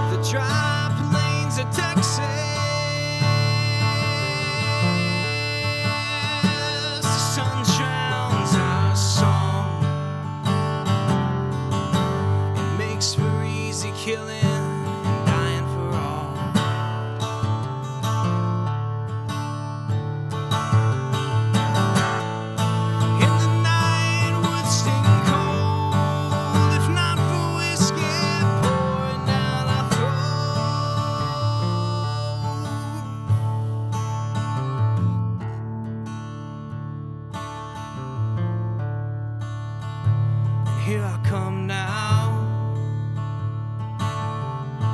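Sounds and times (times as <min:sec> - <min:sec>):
acoustic guitar strumming: 0:00.0 - 0:44.9.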